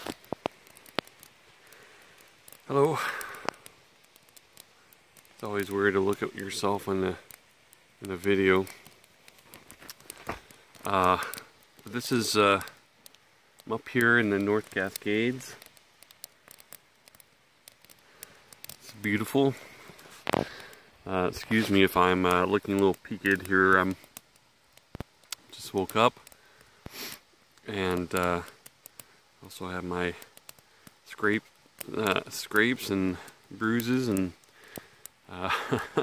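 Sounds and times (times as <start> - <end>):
faint background hiss: 0.0 - 36.0
quiet rustling: 0.0 - 36.0.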